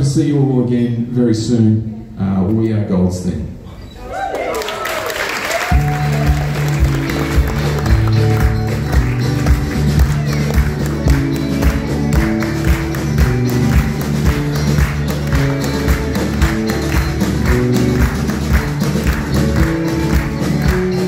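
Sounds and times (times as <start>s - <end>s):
acoustic guitar: 5.7s - 21.0s
drum beat: 5.7s - 21.0s.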